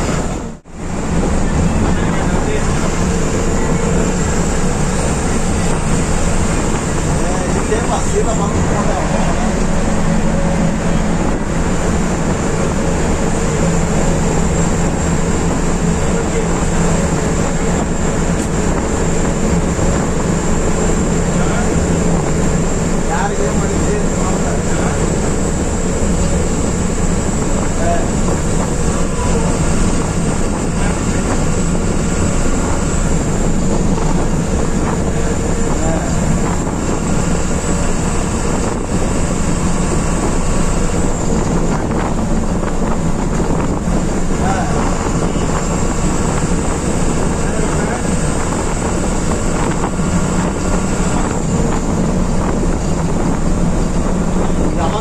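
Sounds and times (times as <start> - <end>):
bus engine hum: 0.0 - 55.0.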